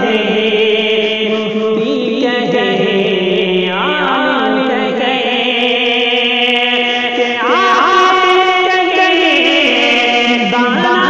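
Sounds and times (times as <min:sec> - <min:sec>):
man singing devotional song: 0:00.0 - 0:11.0.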